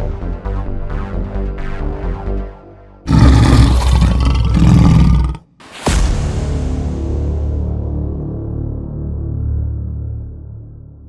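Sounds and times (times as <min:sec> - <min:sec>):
music: 0:00.0 - 0:03.1, 0:05.4 - 0:11.0
roar with low rumble: 0:03.1 - 0:05.4.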